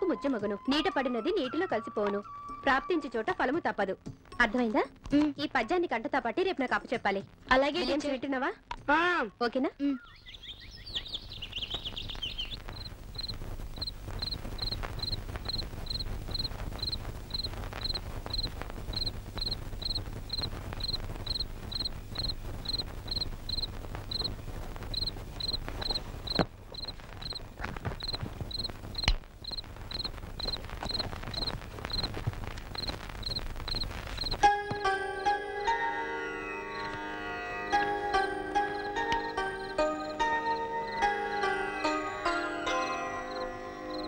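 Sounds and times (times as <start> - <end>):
high twittering: 10.0 - 34.9, 36.7 - 37.0, 38.6 - 41.1
cricket chirping: 10.6 - 35.0, 36.7 - 37.0, 37.7 - 41.5, 43.3 - 44.0.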